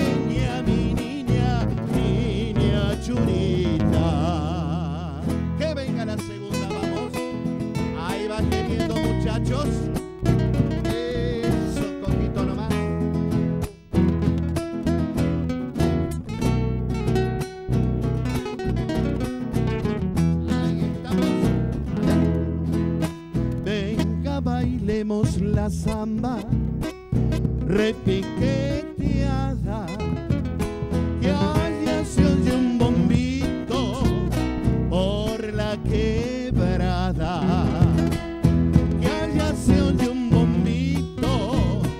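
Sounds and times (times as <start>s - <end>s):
electric bass: 0.0s - 41.9s
nylon-string acoustic guitars: 0.0s - 41.9s.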